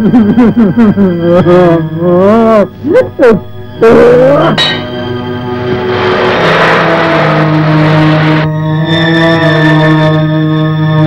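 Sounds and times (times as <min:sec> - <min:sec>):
van driving by: 0:04.8 - 0:08.8.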